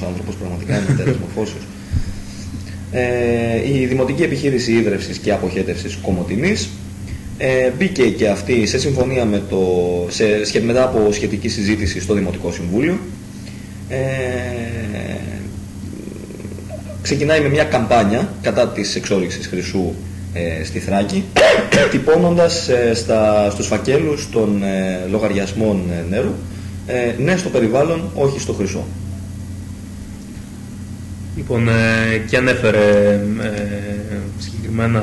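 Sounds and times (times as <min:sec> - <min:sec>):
low electrical hum: 0:00.0 - 0:35.0.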